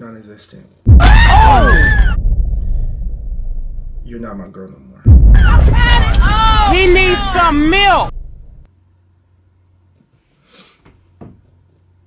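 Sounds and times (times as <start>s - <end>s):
low rumble of boom: 0.9s - 4.4s, 5.1s - 8.7s.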